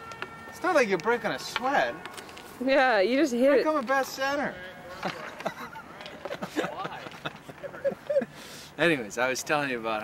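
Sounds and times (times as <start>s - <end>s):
men laughing: 4.8s - 8.6s.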